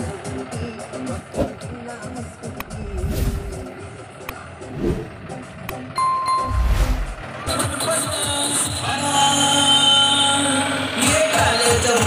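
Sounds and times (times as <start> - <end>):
tractor diesel engine running: 0.0 - 11.6.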